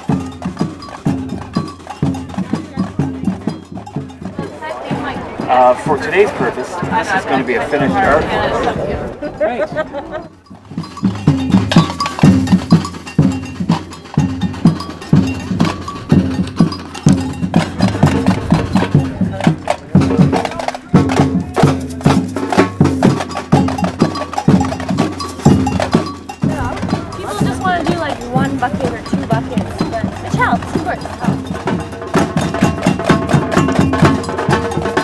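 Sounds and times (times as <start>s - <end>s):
samba percussion band: 0.0s - 8.7s, 9.7s - 35.0s.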